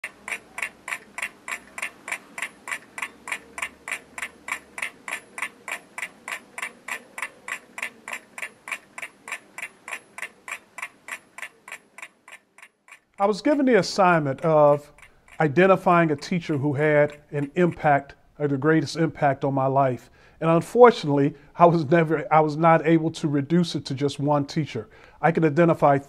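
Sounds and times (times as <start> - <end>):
steady ticking: 0.0 - 22.6.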